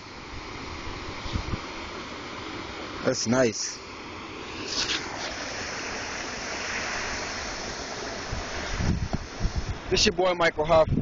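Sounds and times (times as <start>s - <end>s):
water churning over rocks: 0.0s - 10.6s
wind buffeting microphone: 0.4s - 1.8s, 6.9s - 11.0s.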